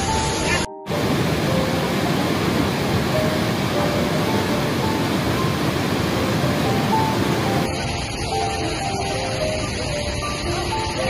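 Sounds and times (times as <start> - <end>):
faint background music: 0.0 - 11.0
waterfall rushing: 0.0 - 11.0.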